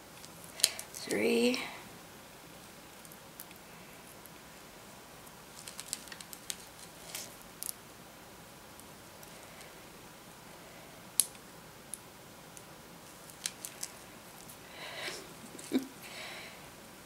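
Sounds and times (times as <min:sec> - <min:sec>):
thread rustling: 0:02.5 - 0:07.8, 0:13.0 - 0:15.8.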